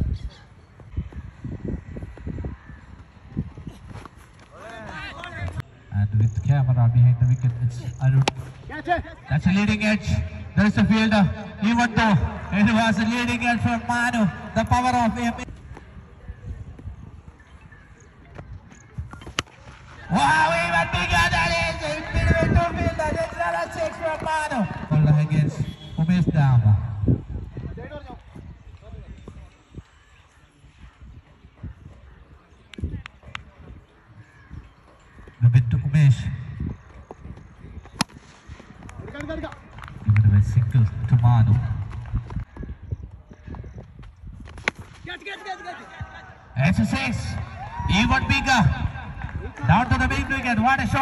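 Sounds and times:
voices: 2.0s - 42.0s, 44.9s - 51.0s
cricket bat striking ball: 19.1s - 19.8s, 38.0s - 38.6s, 44.5s - 45.0s.

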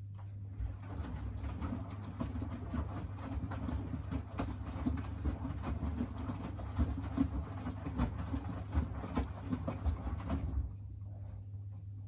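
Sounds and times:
laundry and water sloshing in drum: 0.0s - 12.0s
washing machine motor hum: 0.0s - 12.0s.

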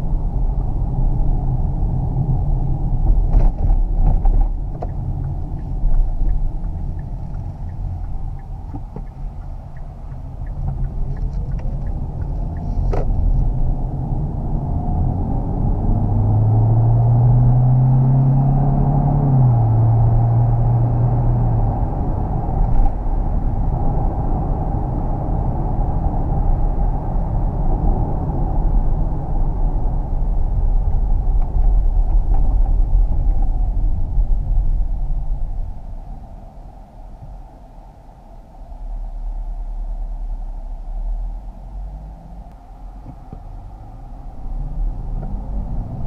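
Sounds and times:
road and tyre rumble in car cabin: 0.0s - 46.0s.

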